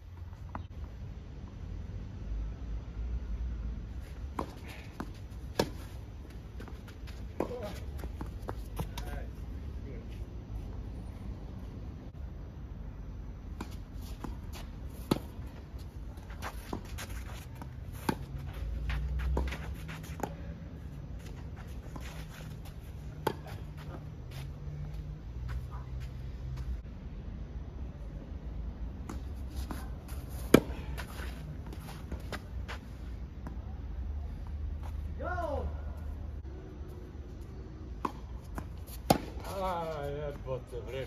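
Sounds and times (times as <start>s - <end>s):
tennis balls struck by rackets: 4.2s - 9.3s, 13.4s - 20.6s, 21.8s - 24.3s, 28.9s - 33.6s, 37.7s - 40.0s.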